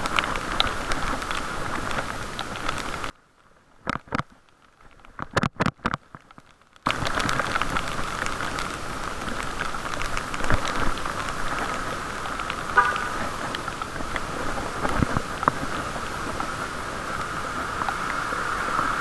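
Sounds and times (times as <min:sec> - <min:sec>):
rain on wet road muffled: 0:00.0 - 0:19.0.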